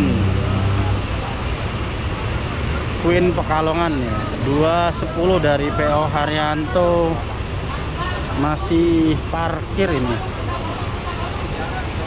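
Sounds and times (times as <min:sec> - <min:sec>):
bus engine humming: 0:00.0 - 0:12.0.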